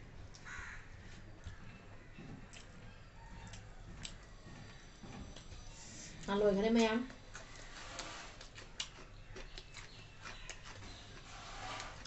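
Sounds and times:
people eating by hand: 0:00.0 - 0:12.0.

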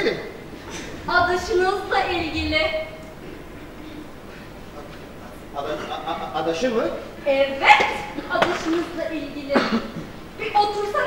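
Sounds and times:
actors speaking on stage: 0:04.2 - 0:11.0.

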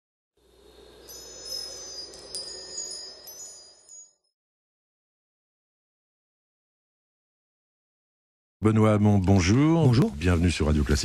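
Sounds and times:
high ringing chime tones: 0:00.9 - 0:04.4.

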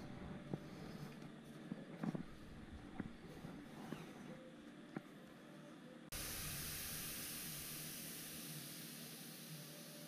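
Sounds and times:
steady hiss: 0:06.1 - 0:10.0.

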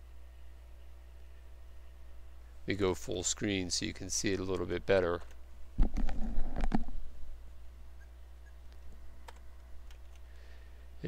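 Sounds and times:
low electrical hum: 0:00.0 - 0:11.0
computer clicks: 0:08.4 - 0:10.3.

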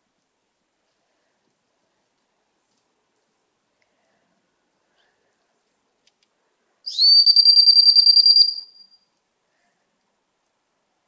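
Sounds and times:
dog whistle blast with trill: 0:06.9 - 0:09.0.

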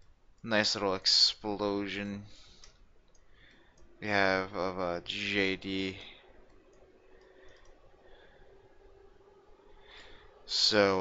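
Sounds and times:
faint steady hum: 0:00.0 - 0:11.0
computer mouse clicks: 0:06.4 - 0:07.9.

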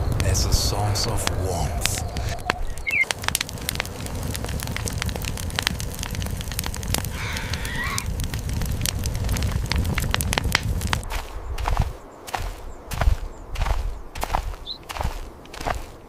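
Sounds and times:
low rumble of flame: 0:00.0 - 0:15.9
campfire crackling and popping: 0:00.0 - 0:16.0.

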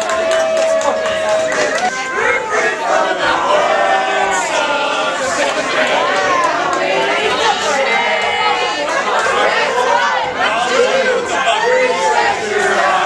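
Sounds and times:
crowd babble of voices: 0:00.0 - 0:13.0.

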